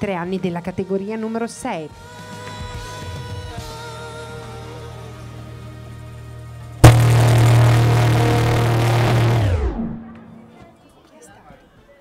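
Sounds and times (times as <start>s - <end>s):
loud music over loudspeakers: 6.8s - 10.0s.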